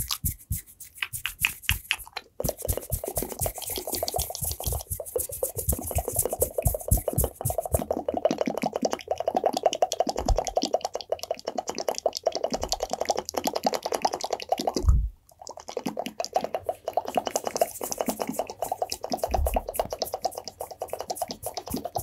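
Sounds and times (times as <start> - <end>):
wet mouth clicks and pops: 0.0 - 22.0.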